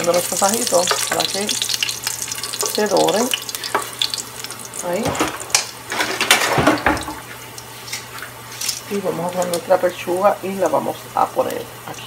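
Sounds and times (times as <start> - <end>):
oil crackling and popping: 0.0 - 9.7
garlic sizzling in hot oil: 0.0 - 12.0.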